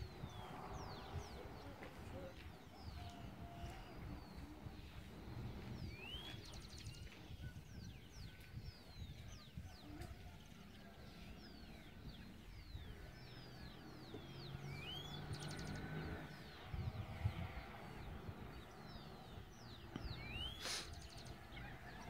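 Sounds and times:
small birds chirping: 0.0 - 22.0.

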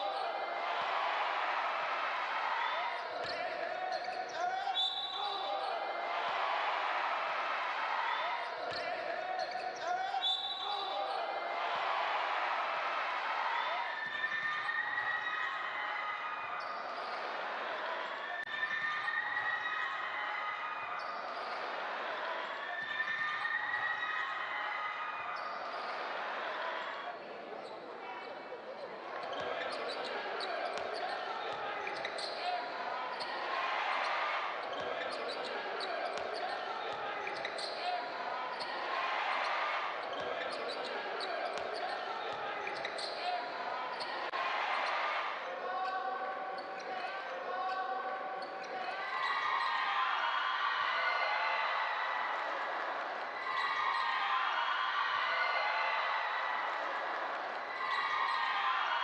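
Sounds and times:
voices of players and spectators: 0.0 - 59.0.

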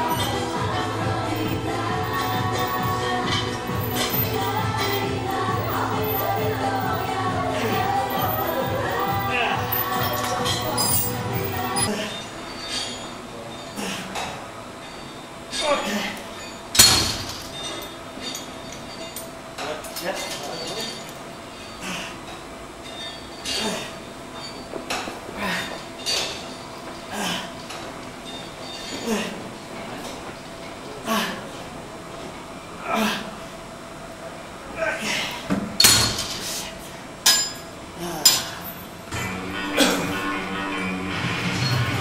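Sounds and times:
music: 0.0 - 11.9, 39.1 - 42.0
indistinct voices: 0.0 - 14.7, 38.0 - 42.0
grunt of exertion: 32.8 - 33.4.

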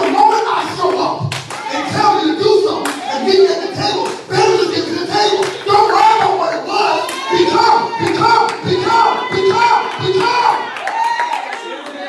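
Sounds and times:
congregation clapping: 0.0 - 1.8, 2.7 - 3.1, 3.8 - 12.0
people shouting: 1.5 - 11.8.

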